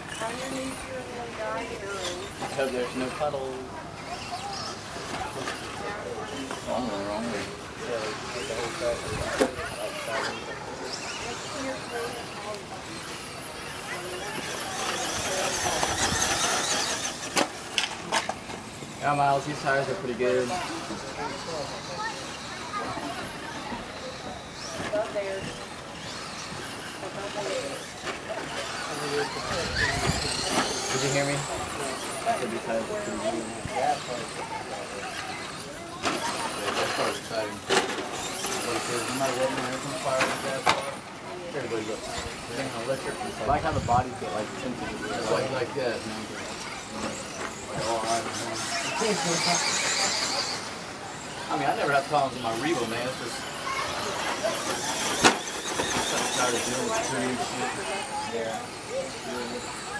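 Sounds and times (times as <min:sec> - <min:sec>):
high electric motor whine: 0:00.0 - 0:59.9.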